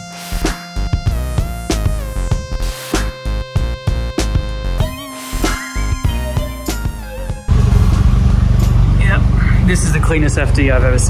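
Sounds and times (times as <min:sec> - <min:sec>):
electronic music with synth: 0:00.0 - 0:08.7
rotary engine idling: 0:07.5 - 0:11.0.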